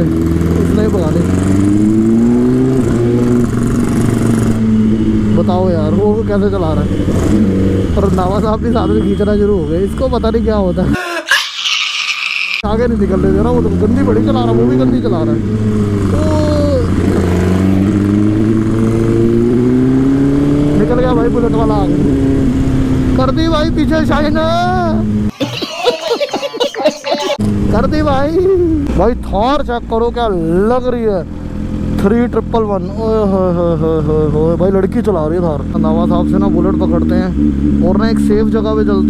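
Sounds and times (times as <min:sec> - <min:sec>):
motorcycle engine accelerating: 0:00.0 - 0:09.0, 0:12.6 - 0:25.3, 0:27.3 - 0:39.0.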